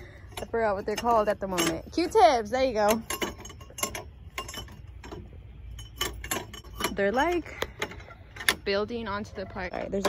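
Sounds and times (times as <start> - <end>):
metal chime tubes clinking: 0.0 - 8.6.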